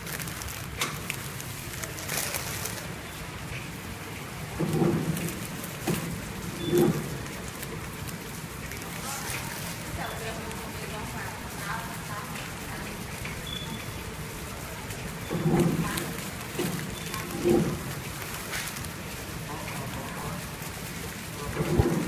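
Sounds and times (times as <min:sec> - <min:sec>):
packing machine hissing: 0:00.0 - 0:11.0, 0:12.4 - 0:22.0.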